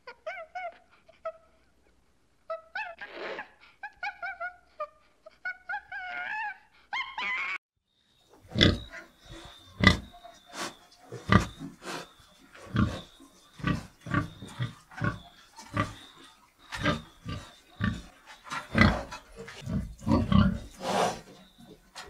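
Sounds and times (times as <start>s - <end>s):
pigs grunting: 8.4s - 22.0s.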